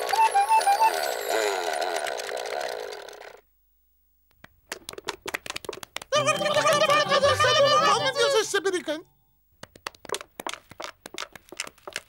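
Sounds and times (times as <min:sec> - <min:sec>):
sharp clicks and taps: 0:04.3 - 0:06.2, 0:09.6 - 0:12.0.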